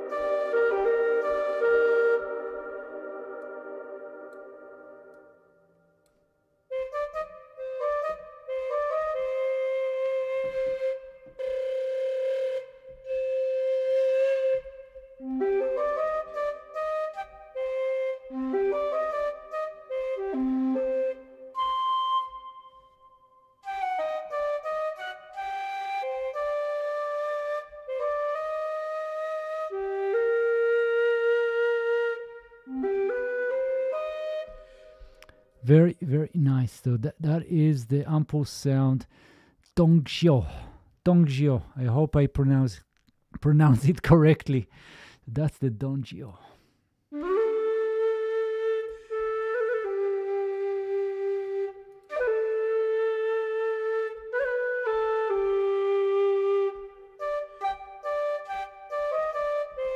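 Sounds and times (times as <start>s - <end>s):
bamboo flute slow melody: 0.0s - 36.2s, 47.1s - 59.9s.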